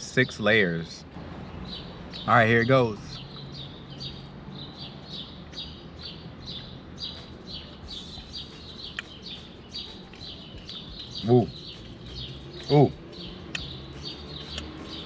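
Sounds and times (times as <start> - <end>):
small bird chirping: 1.2 - 15.0.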